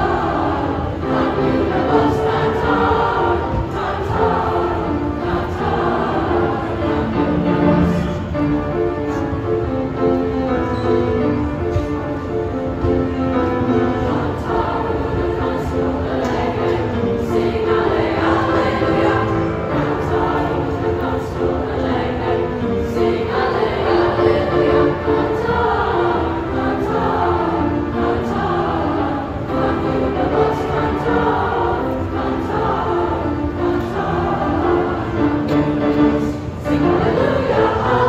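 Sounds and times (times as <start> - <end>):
chorus singing in parts: 0.0 - 9.2, 12.8 - 38.0
piano accompaniment: 0.0 - 38.0.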